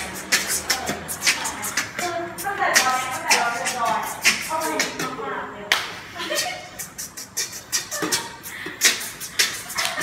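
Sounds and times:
voices: 0:00.0 - 0:06.8
sharp hand clap: 0:05.7 - 0:06.0.

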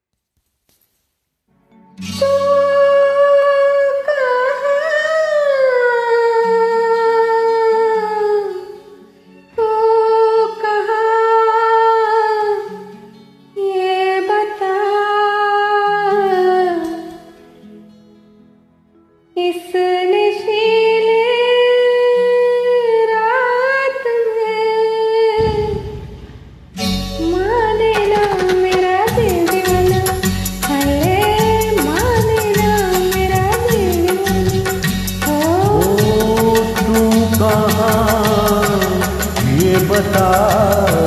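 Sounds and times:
karaoke backing track: 0:19.7 - 0:41.0
low rumble: 0:25.4 - 0:28.2.

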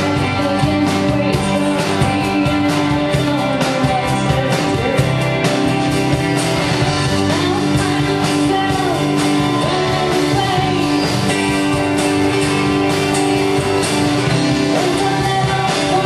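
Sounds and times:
person singing: 0:00.0 - 0:06.0, 0:06.8 - 0:12.4, 0:14.3 - 0:16.0
drums: 0:00.0 - 0:16.0
electric guitar: 0:00.0 - 0:16.0.

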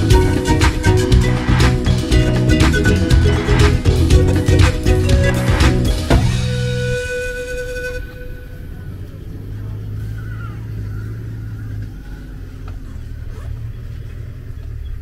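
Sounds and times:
background music: 0:00.0 - 0:08.5
vehicle engine rumbling: 0:00.0 - 0:15.0.

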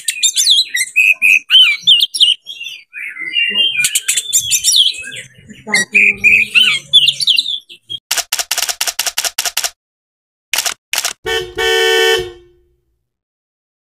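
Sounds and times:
bird singing whistled phrases: 0:00.0 - 0:07.9
keyboard typing clicks: 0:08.1 - 0:09.8
single clicks: 0:10.5 - 0:11.2
buzzy horn-like tone: 0:11.3 - 0:12.8.

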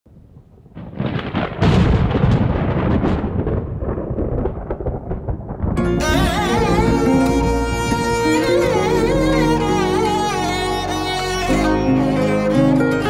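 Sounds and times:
thunder-like rumble with crackles: 0:00.1 - 0:08.2
bowed string melody with vibrato: 0:05.8 - 0:13.0.

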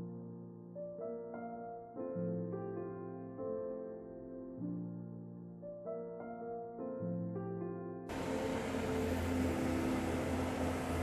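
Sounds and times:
low boat engine hum: 0:08.1 - 0:11.0
outdoor rush of noise: 0:08.1 - 0:11.0.

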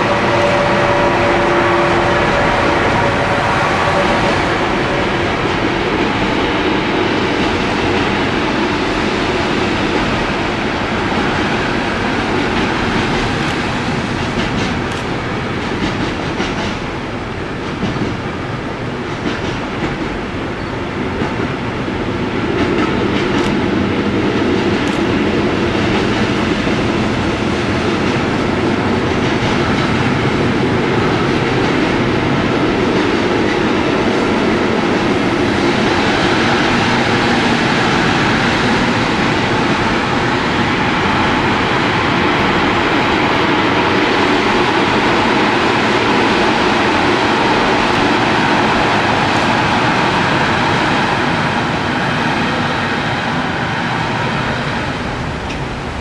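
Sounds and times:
freight train rumbling on rails: 0:00.0 - 0:56.0.

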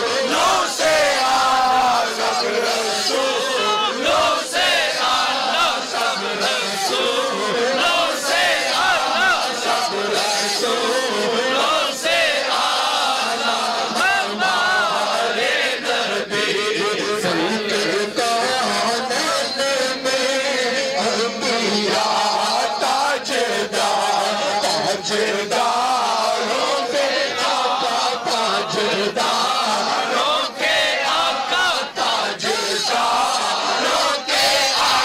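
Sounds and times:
crowd of men chanting: 0:00.0 - 0:35.0.

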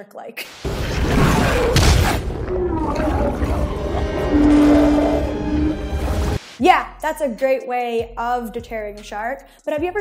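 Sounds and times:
dramatic film score: 0:00.6 - 0:06.6
deep rumble: 0:00.7 - 0:06.4.

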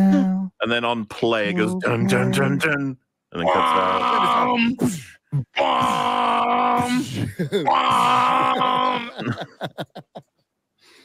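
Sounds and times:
man laughing hard: 0:07.2 - 0:10.2.

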